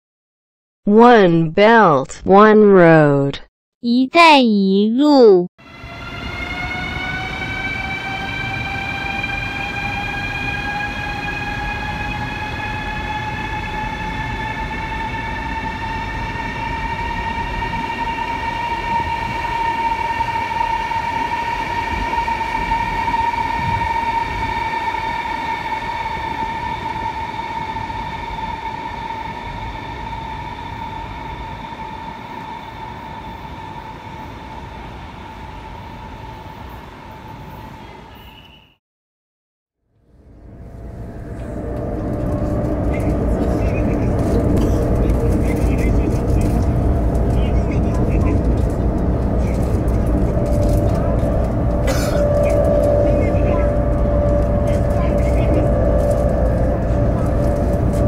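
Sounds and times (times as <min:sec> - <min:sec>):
electric train motors whining: 0:05.7 - 0:37.8, 0:40.2 - 0:58.0
train wheels rumbling: 0:40.2 - 0:58.0.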